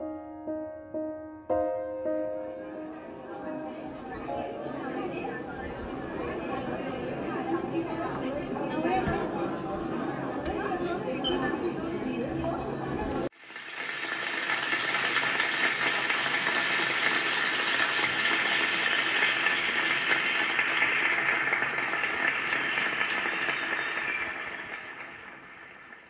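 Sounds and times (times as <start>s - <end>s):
audience applause: 13.3s - 26.0s.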